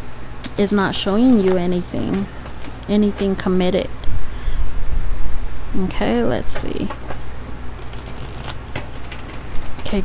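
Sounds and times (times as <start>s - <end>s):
cards being shuffled: 0.8s - 1.7s, 7.8s - 9.2s.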